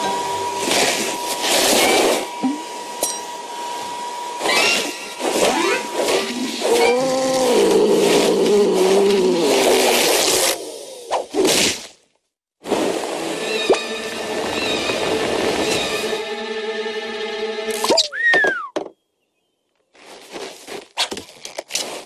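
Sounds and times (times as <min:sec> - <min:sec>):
cartoon vacuum cleaner whine: 0:00.0 - 0:11.1, 0:12.7 - 0:18.7.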